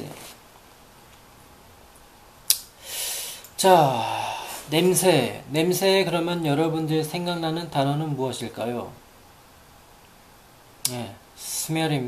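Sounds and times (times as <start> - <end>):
mouth click: 2.5 - 2.7
breath drawn in: 2.8 - 3.5.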